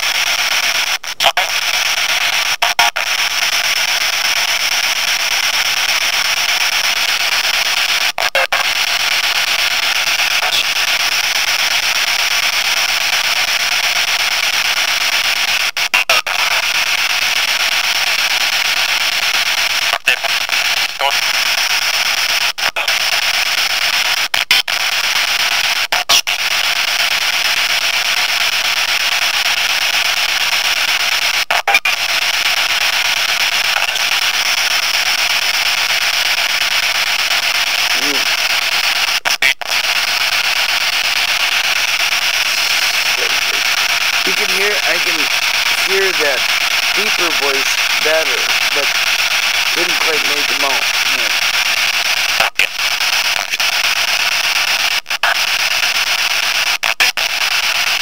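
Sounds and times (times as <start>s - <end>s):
loud static hiss: 0.0s - 58.0s.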